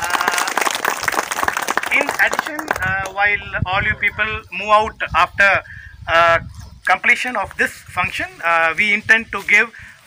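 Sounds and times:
people applauding: 0.0 - 3.2.

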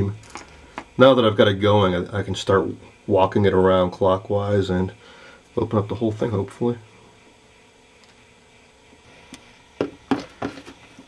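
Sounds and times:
capacitor clicking and knocking: 9.8 - 10.8.

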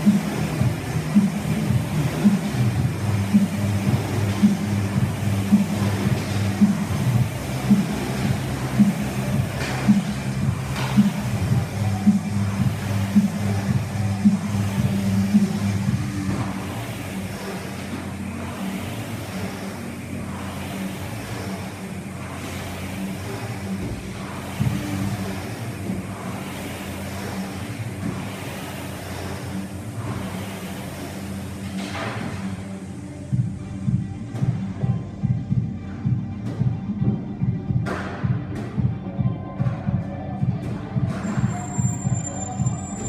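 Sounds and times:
background music: 0.0 - 43.0
rowing machine flywheel whirring: 0.0 - 43.0.

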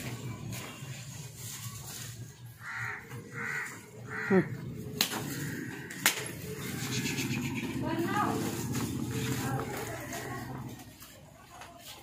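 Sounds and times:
crow cawing: 2.6 - 7.7.

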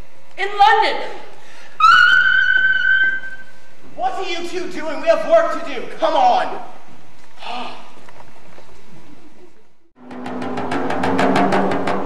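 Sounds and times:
person squealing with excitement: 1.8 - 3.5.

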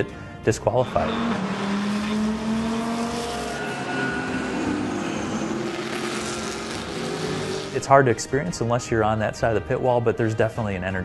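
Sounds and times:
race car engine: 0.0 - 8.2
road noise: 0.0 - 8.4.

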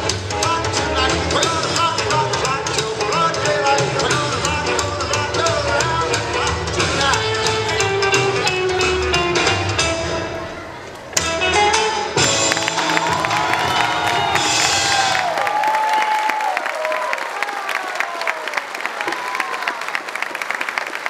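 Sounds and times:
rock and roll song: 0.0 - 10.5, 11.2 - 15.3
high-pitched cheering: 12.2 - 20.2
audience applause: 12.2 - 21.0.

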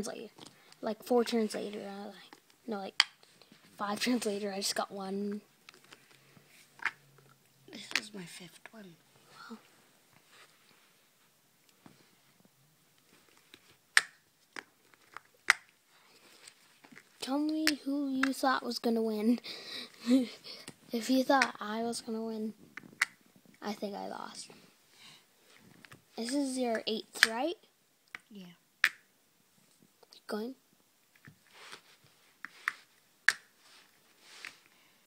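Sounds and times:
plastic figures clicking together: 32.6 - 33.5.

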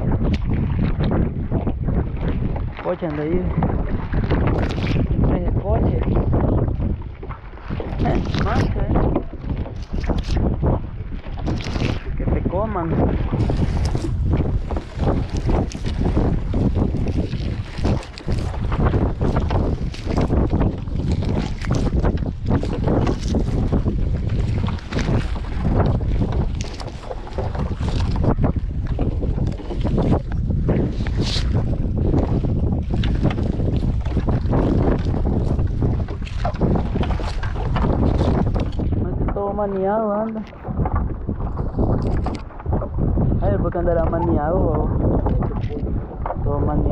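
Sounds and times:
wind buffeting microphone: 0.0 - 46.9
wet net rustling and slapping: 11.3 - 12.2, 13.3 - 38.9.

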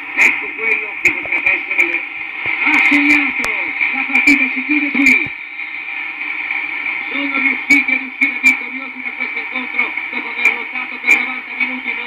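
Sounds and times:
steady background noise: 0.0 - 12.0
man commentating: 0.1 - 5.4, 7.0 - 12.0.

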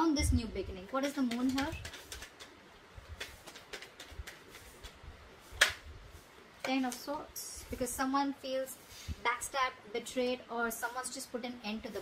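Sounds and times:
cards ticking: 1.0 - 5.0
card snap: 5.6 - 5.8.

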